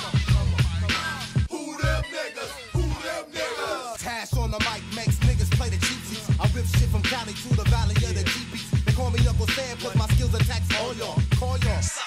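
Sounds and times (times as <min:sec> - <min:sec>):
rapping over heavy bass beat: 0:00.0 - 0:12.0.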